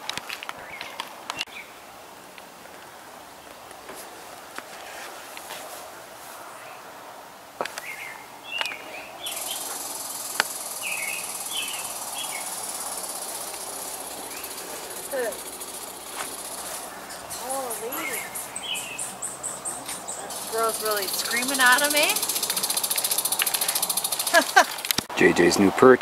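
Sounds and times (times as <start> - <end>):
sharp clicks: 8.6 - 16.6, 19.8 - 25.1
high-pitched insect buzz: 9.2 - 25.0.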